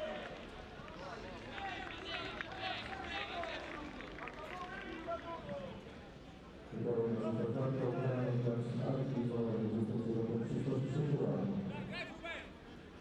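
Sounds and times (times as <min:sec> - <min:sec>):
low crowd noise: 0:00.0 - 0:13.0.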